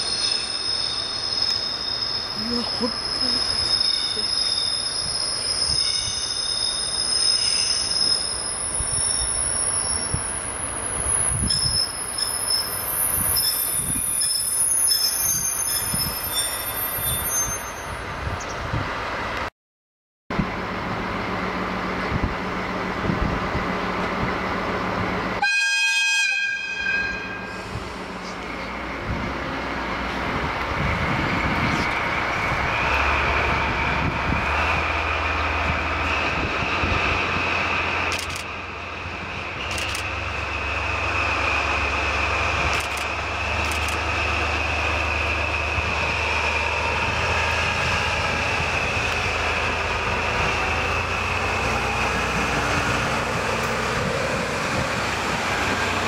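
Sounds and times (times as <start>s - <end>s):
train wheel and brake squeal: 0.0s - 18.5s, 26.3s - 29.0s, 35.0s - 53.1s
diesel locomotive idling: 20.4s - 25.4s, 27.1s - 56.0s
train horn blast: 25.4s - 27.6s.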